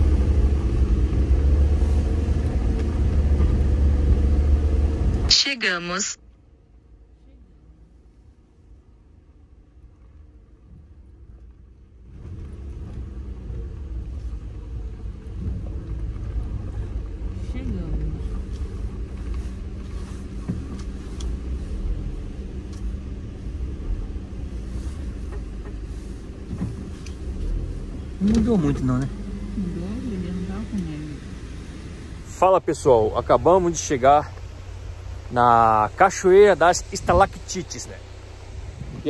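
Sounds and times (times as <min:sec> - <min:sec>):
tyre and road rumble: 0:00.0 - 0:05.8, 0:08.6 - 0:39.0
vehicle engine running: 0:00.0 - 0:39.0.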